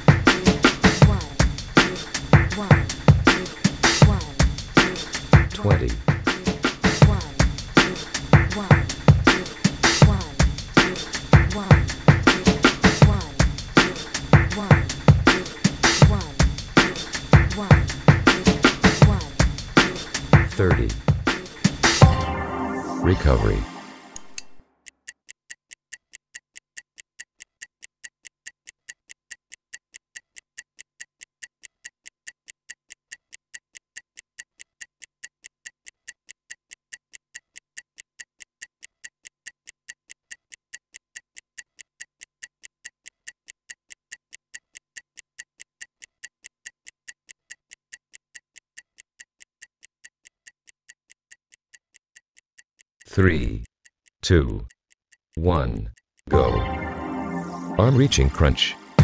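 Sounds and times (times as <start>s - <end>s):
stopwatch ticking: 0.0s - 22.1s, 24.2s - 56.3s.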